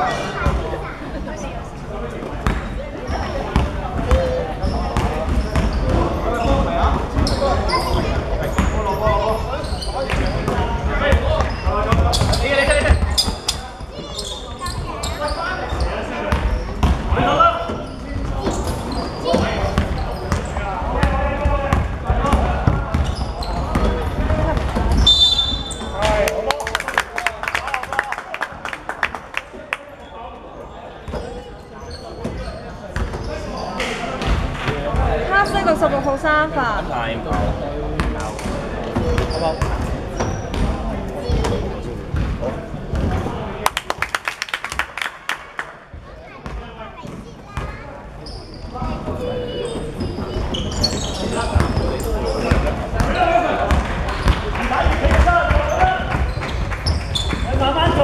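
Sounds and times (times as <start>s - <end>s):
players' voices echoing: 44.8s - 58.0s.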